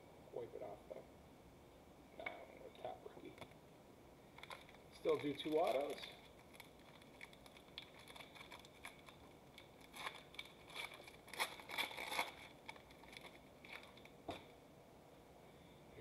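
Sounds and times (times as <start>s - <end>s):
foil wrapper crinkling and tearing: 4.3s - 14.2s.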